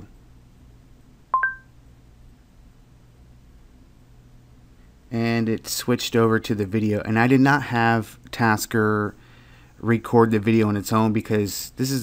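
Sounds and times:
two-tone beeps: 0:01.4 - 0:01.7.

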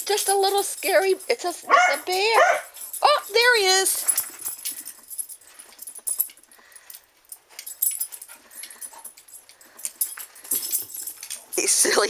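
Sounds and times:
dog sounds: 0:01.5 - 0:05.0.

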